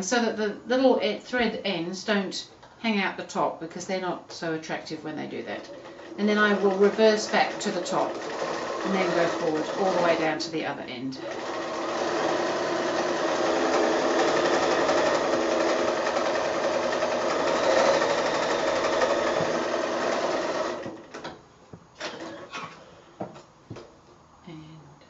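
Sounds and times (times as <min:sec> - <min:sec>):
sewing machine running: 0:05.3 - 0:10.6, 0:11.2 - 0:21.3.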